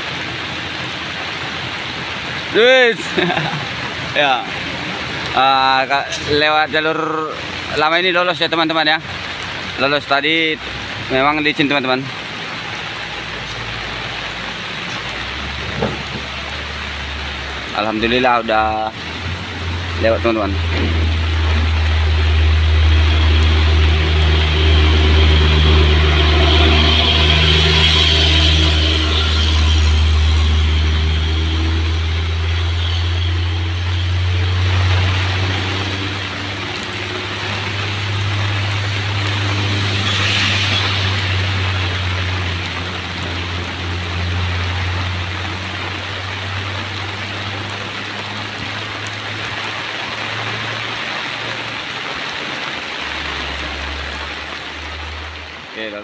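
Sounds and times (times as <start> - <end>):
diesel truck engine droning: 0.0 - 56.0
steady rain hiss: 0.0 - 56.0.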